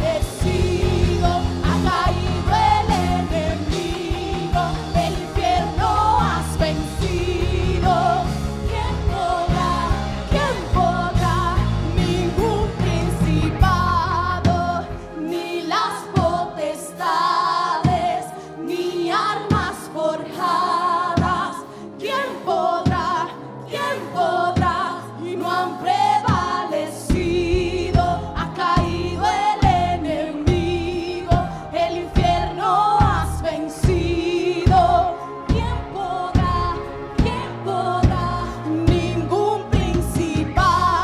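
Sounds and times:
steady drum beat: 0.0s - 15.0s, 26.2s - 41.0s
heavy bass: 0.0s - 15.1s
keyboard: 0.0s - 41.0s
women singing together: 0.0s - 41.0s.

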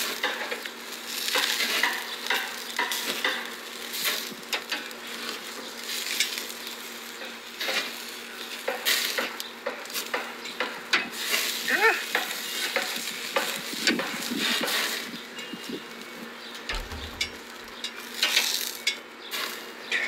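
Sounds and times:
food sizzling on a grill: 0.0s - 20.0s
utensil clicking and knocking: 16.7s - 17.8s.

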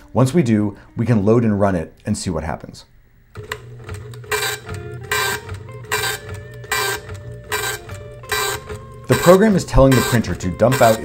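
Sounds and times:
printer motor hum: 3.3s - 11.0s
dot-matrix printer print-head strikes: 3.4s - 11.0s.

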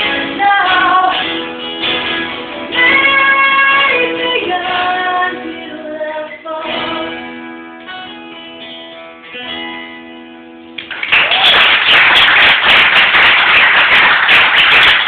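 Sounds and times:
guitar chords ringing: 0.0s - 10.8s
applause: 10.8s - 15.0s.

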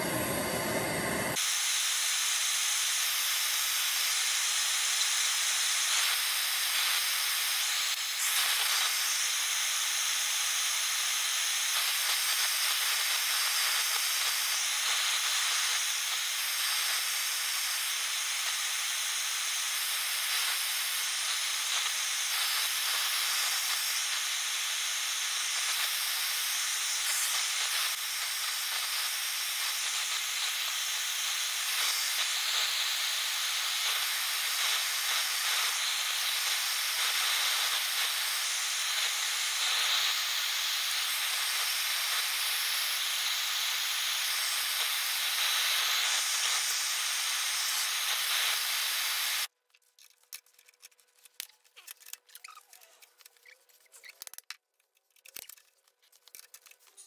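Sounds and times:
gas torch hissing: 0.0s - 49.5s.

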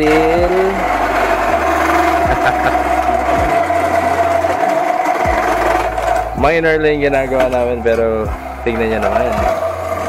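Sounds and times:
drill press whining: 0.0s - 10.0s.

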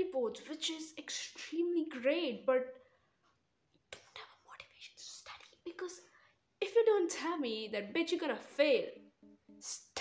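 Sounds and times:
woman whispering: 3.9s - 6.3s.

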